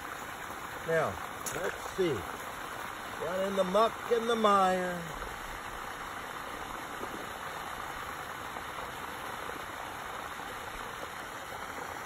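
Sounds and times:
pond-side ambience rushing noise: 0.0 - 12.0.

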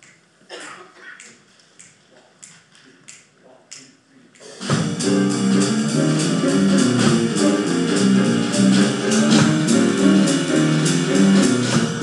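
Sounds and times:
finger snaps in a steady beat: 0.0 - 0.3, 1.2 - 4.6.

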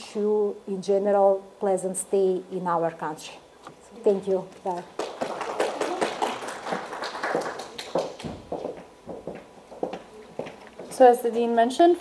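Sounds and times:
audience clapping: 4.9 - 8.9
footsteps on hard floor: 8.2 - 11.0.

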